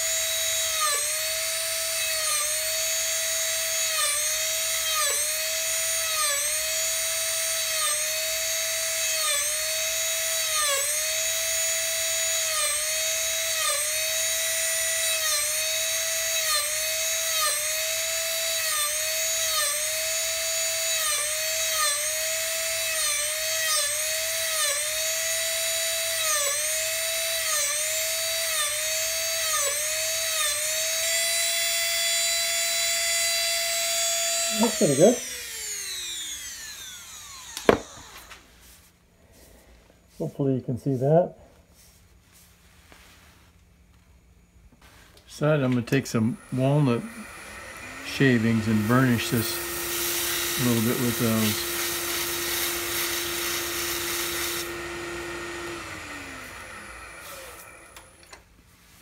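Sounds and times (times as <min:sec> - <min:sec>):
rotary carver whining: 0:00.0 - 0:39.8, 0:44.8 - 0:59.0.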